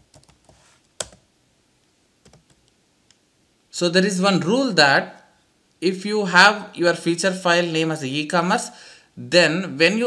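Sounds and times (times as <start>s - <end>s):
computer keyboard typing: 0.0s - 1.2s, 2.2s - 2.7s.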